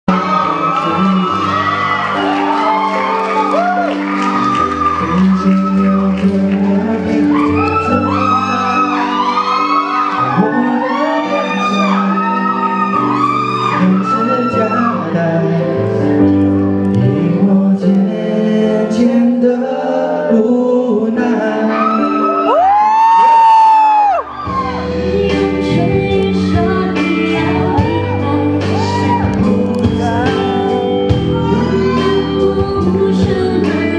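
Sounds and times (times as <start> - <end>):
audience shouting and whooping: 0.1 - 15.2, 21.7 - 25.4, 27.3 - 32.5
live band playing: 0.1 - 20.5, 21.2 - 33.9
electric keyboard: 0.1 - 33.9
stage piano chords: 0.1 - 33.9.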